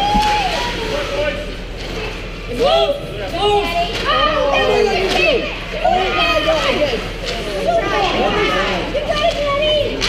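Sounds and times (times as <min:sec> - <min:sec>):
people calling out: 0:02.5 - 0:10.0.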